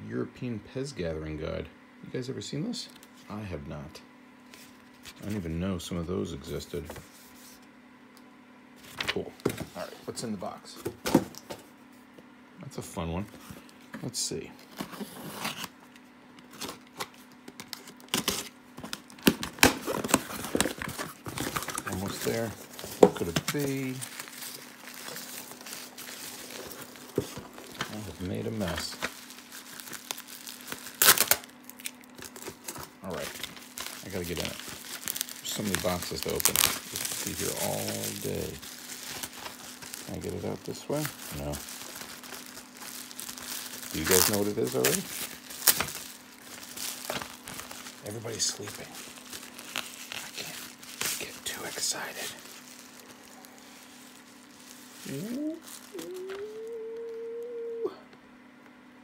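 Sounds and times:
packing tape tearing off cardboard: 14.6s - 15.8s, 16.4s - 51.3s, 52.4s - 57.1s
bubble wrap crinkling: 14.6s - 57.8s.

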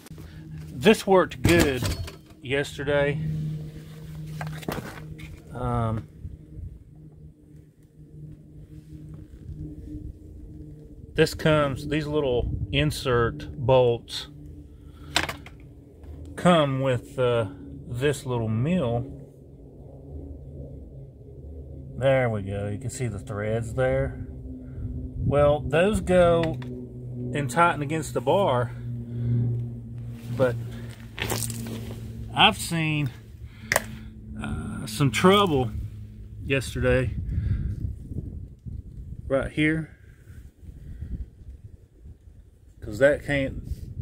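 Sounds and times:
low mechanical hum: 0.0s - 44.0s
uneven rumble: 0.0s - 44.0s.

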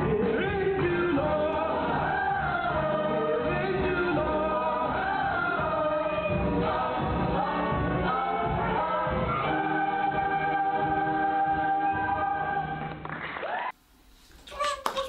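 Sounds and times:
ensemble singing in chorus: 0.0s - 13.0s.

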